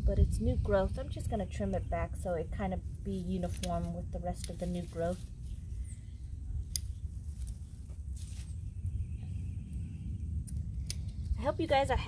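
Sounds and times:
low rumble: 0.0 - 12.0
leaves rustling: 0.7 - 9.2
plant stems snapping: 3.4 - 4.9, 6.6 - 7.6, 10.4 - 11.2.

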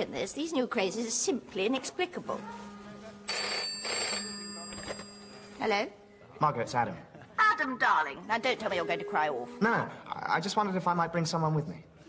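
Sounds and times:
telephone bell ringing: 3.3 - 5.6.

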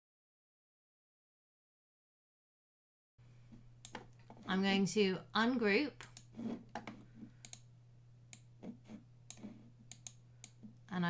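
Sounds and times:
faint low hum: 3.2 - 11.0
computer mouse clicking: 3.8 - 4.5, 6.0 - 7.7, 8.3 - 10.8.

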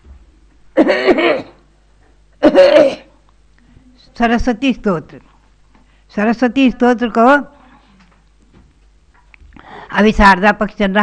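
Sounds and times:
woman clearing her throat: 0.8 - 1.7, 2.4 - 3.2.

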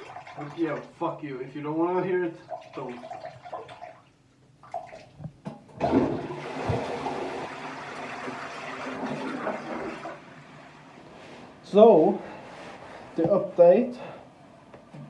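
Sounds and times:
toilet flushing: 0.0 - 1.1, 2.2 - 5.1, 5.8 - 11.6.

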